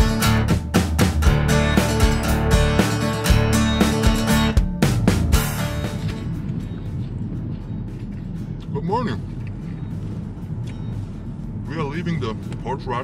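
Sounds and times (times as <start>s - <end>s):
guitar music: 0.0s - 8.6s
road and engine rumble: 0.0s - 13.0s.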